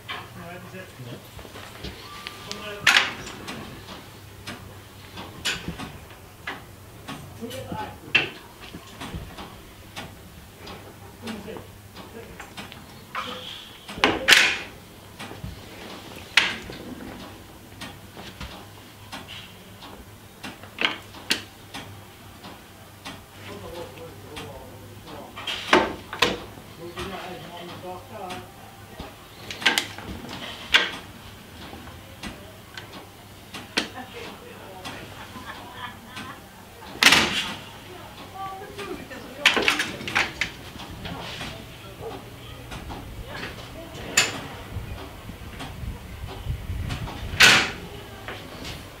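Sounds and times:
signal levers clacking: 1.2 - 49.0.

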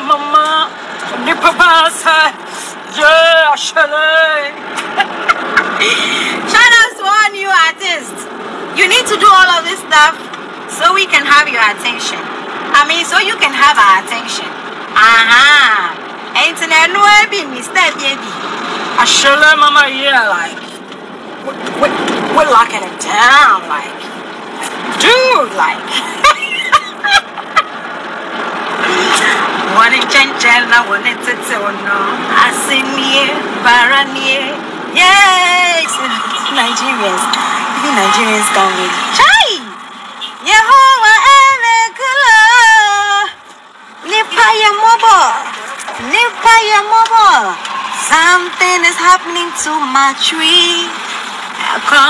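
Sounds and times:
woman laughing: 4.7 - 6.4, 25.8 - 27.8
car cabin noise: 8.7 - 52.0.

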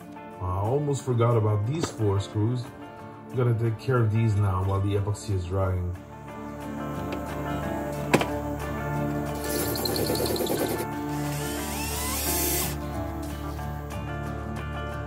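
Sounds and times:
background music: 0.0 - 15.0
cordless drill running: 9.4 - 12.9.

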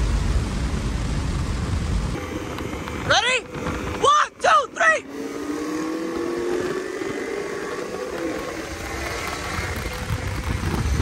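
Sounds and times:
wind noise: 0.0 - 4.4, 5.2 - 11.0
cars accelerating at full throttle: 2.1 - 11.0.

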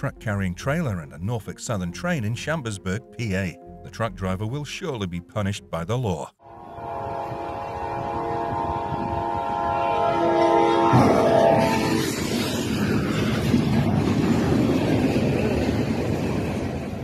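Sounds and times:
locomotive horn blowing: 6.4 - 12.4
train rumbling: 6.4 - 17.0.

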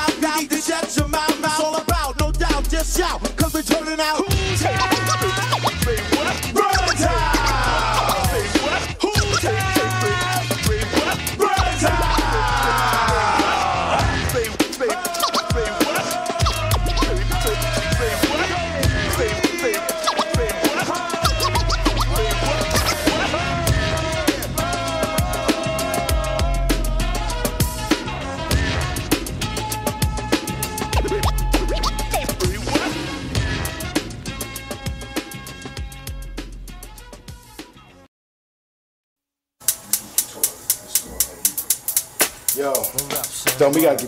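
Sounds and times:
hip-hop beat: 0.0 - 37.8, 39.6 - 44.0
bass line: 1.9 - 37.4
turntable scratching: 3.4 - 12.7, 14.4 - 18.5, 19.2 - 23.3, 30.8 - 32.8, 39.6 - 44.0
sharp percussion hits: 39.6 - 44.0.

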